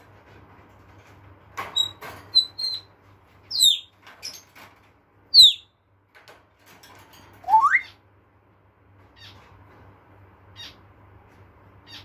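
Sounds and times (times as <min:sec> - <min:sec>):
parrot whistling and chirping: 0:05.4 - 0:05.7, 0:07.4 - 0:08.0.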